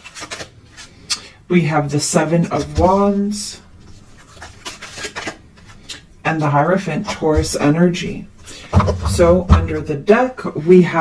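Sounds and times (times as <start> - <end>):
cards rubbing and sliding: 0.0 - 1.2, 3.8 - 6.1.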